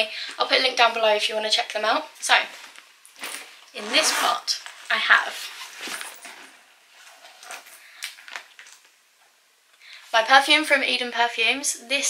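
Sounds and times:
rummaging in fabric backpack: 0:02.5 - 0:08.4.

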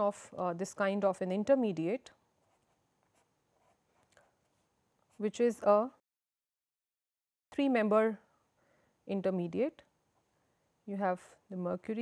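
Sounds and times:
marker pen writing on paper: 0:02.4 - 0:04.6.

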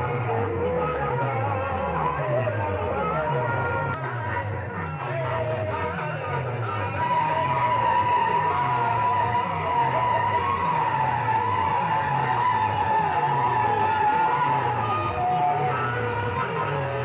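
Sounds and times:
long high tone sinking in pitch: 0:07.0 - 0:17.0.

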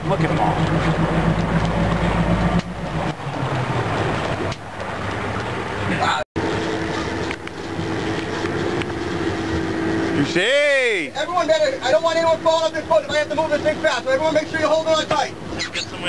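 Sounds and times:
boat engine running: 0:00.0 - 0:16.0
water noise: 0:00.0 - 0:16.0
wind: 0:00.0 - 0:16.0.

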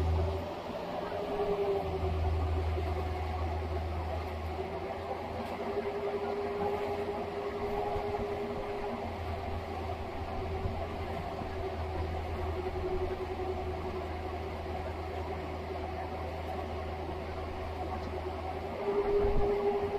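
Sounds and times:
diesel engine under load: 0:00.0 - 0:19.9
steady whine: 0:00.0 - 0:19.9.

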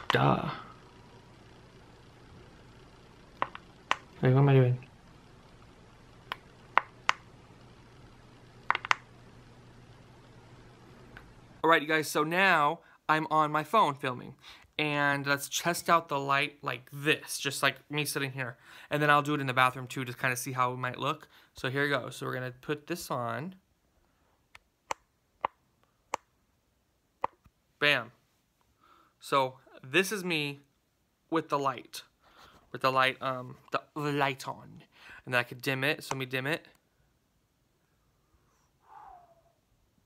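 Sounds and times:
faint low hum: 0:00.0 - 0:40.0
fingers tapping smartphone: 0:08.6 - 0:09.0.

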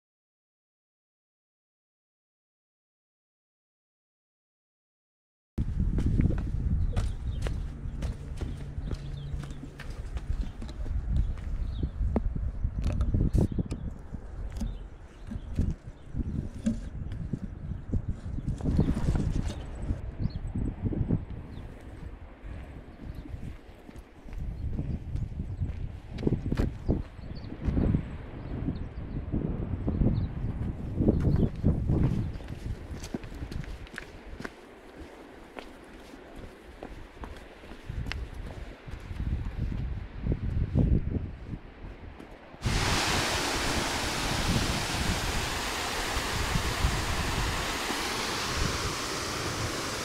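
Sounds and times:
footsteps on rocky trail: 0:05.6 - 0:12.4, 0:31.2 - 0:39.9.

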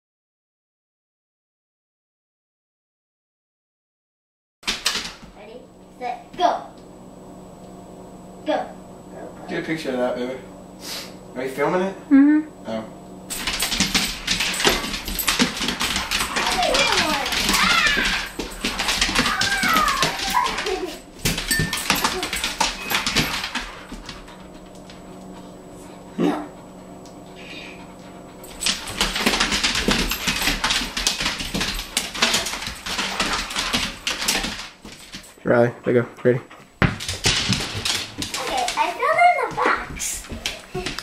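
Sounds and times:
dog claws skittering on tile: 0:13.3 - 0:25.4, 0:27.2 - 0:35.4, 0:36.9 - 0:41.0
dogs whining and yipping: 0:13.4 - 0:24.4, 0:27.3 - 0:34.6.

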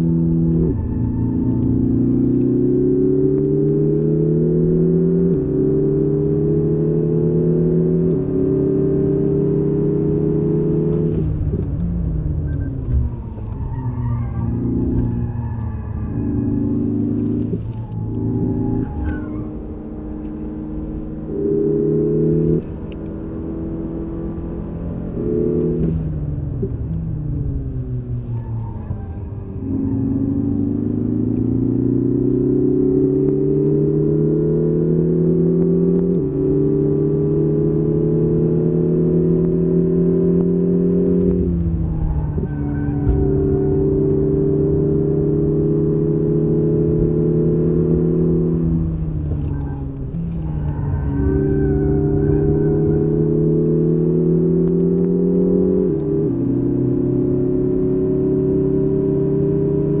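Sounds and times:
car engine accelerating hard: 0:00.0 - 1:00.0.

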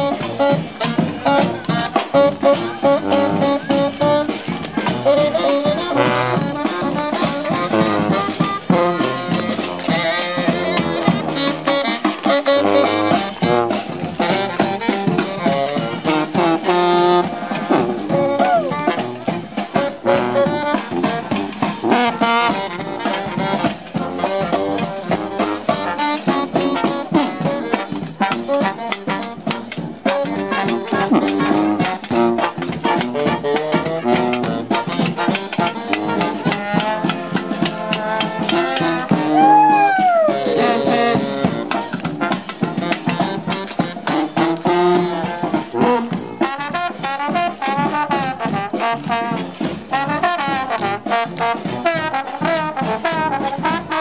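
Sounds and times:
brass band playing jazz: 0:00.0 - 0:54.0
snare drum beat: 0:00.0 - 0:54.0.

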